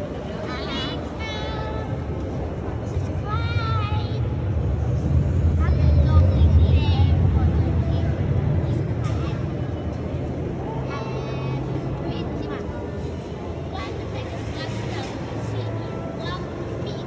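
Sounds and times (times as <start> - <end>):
scattered voices: 0.0 - 17.0
low rumble: 2.4 - 10.8.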